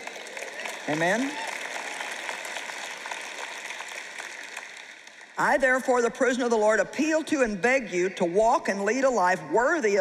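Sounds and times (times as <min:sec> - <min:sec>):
audience applause: 0:00.0 - 0:05.4.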